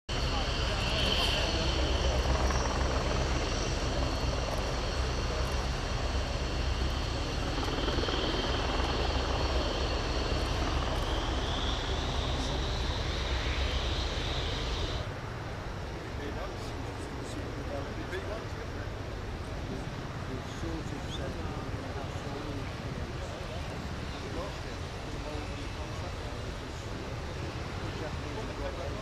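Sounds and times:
jet engines running: 0:00.1 - 0:29.0.

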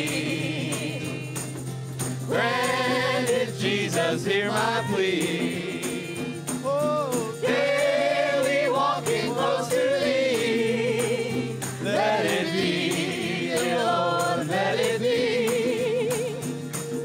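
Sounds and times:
steady percussion beat: 0:00.0 - 0:17.0.

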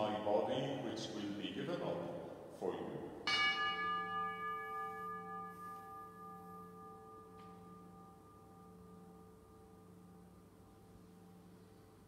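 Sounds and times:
altar bell ringing: 0:03.2 - 0:12.0.

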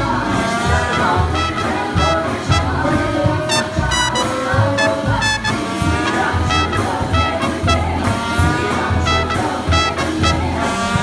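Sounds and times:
swing big band playing: 0:00.0 - 0:11.0
brass horn lines: 0:00.2 - 0:11.0.

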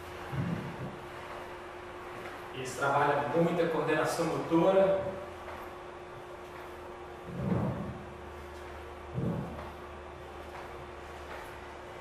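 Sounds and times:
steady low hum: 0:00.0 - 0:12.0
sneakers thumping on wooden floor: 0:07.3 - 0:08.1, 0:09.2 - 0:09.8.

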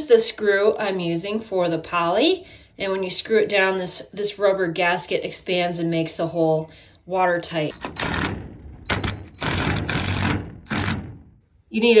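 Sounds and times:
cordless drill driving screws: 0:07.8 - 0:11.2.

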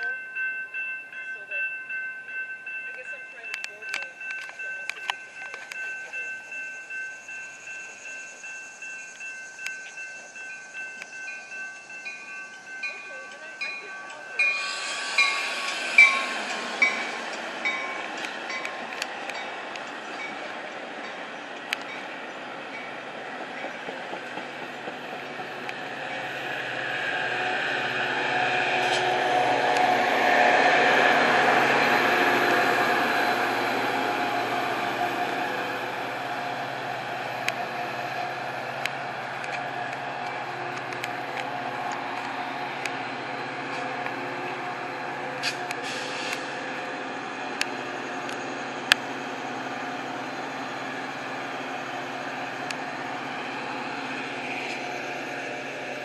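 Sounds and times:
diesel locomotive passing: 0:00.0 - 0:56.0
railroad crossing bells ringing: 0:00.0 - 0:56.0
train rumble: 0:00.0 - 0:56.0.

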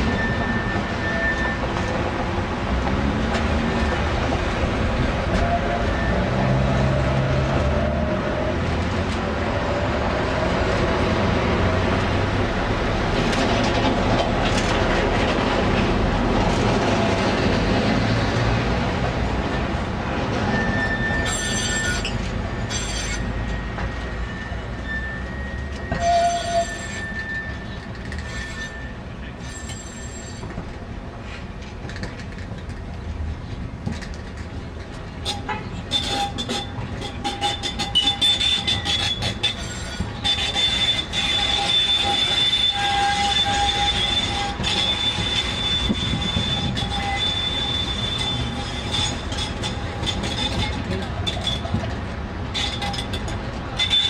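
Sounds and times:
tram wheels squealing on track: 0:00.0 - 0:54.0.

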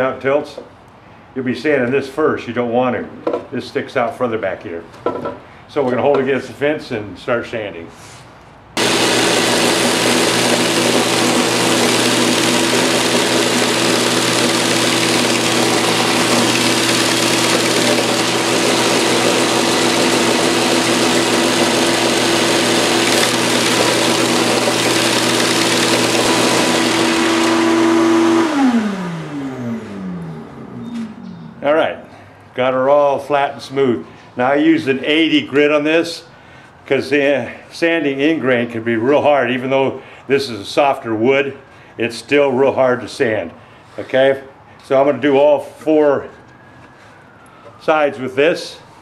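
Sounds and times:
belt sander sanding wood: 0:08.8 - 0:30.0
motor winding down: 0:08.8 - 0:31.2.

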